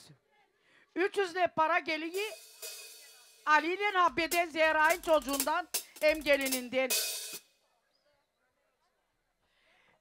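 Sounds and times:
cymbal crash: 2.2s - 3.5s.

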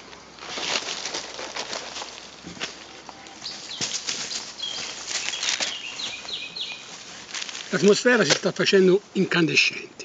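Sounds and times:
rustling and crackling: 0.0s - 8.9s
songbird whistled notes: 4.6s - 6.8s.

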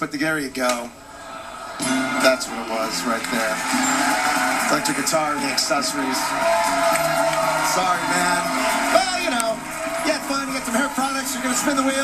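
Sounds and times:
studio audience hubbub: 0.9s - 12.0s
men talking: 1.8s - 12.0s.

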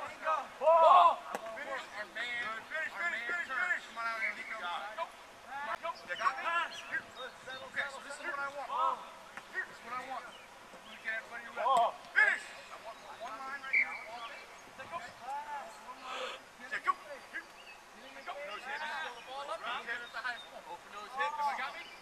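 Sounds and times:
people shouting: 0.2s - 1.3s.

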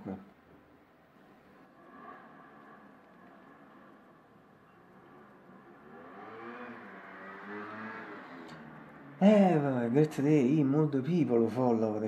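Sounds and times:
passing vehicle engine: 1.5s - 12.0s.

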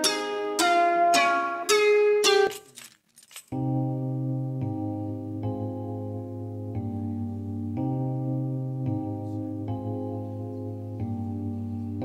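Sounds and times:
plucked guitar-like notes: 0.0s - 2.6s
electric piano chord loop: 3.5s - 12.0s.

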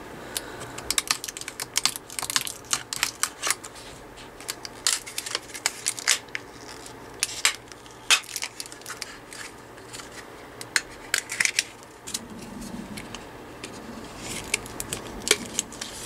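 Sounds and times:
plastic cases clicking and snapping: 0.4s - 3.7s.

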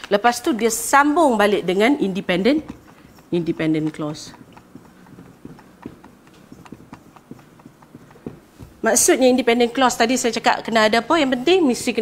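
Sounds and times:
marker tapping on whiteboard: 1.3s - 9.9s.

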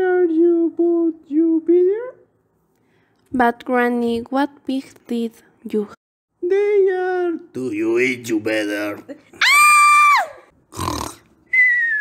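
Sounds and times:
high-pitched scream: 9.4s - 10.5s
thin whistle-like falling tone: 11.5s - 12.0s.

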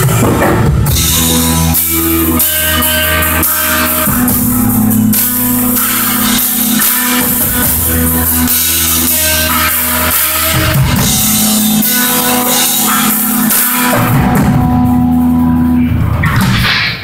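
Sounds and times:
bass guitar low notes: 0.0s - 16.8s
distorted electric guitar: 0.0s - 17.0s
drum kit: 0.0s - 17.0s.

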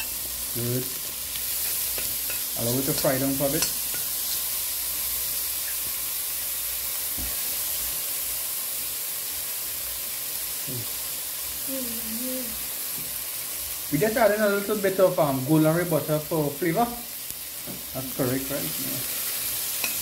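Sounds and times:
vegetables sizzling in metal pot: 0.0s - 20.0s.

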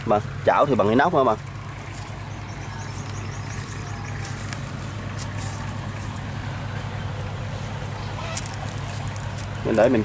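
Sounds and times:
tractor diesel engine idling: 0.0s - 10.0s.

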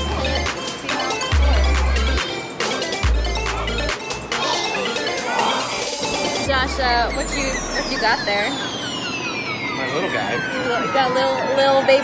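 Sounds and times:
people talking: 0.0s - 9.0s, 9.7s - 12.0s
high tone gliding down: 4.7s - 12.0s
fainter falling tones: 6.7s - 12.0s.

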